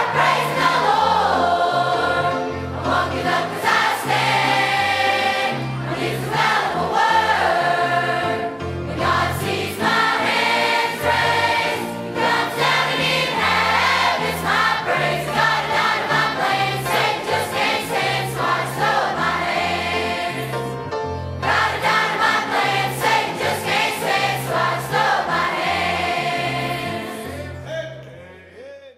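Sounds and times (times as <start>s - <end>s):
youth choir singing gospel: 0.0s - 27.7s.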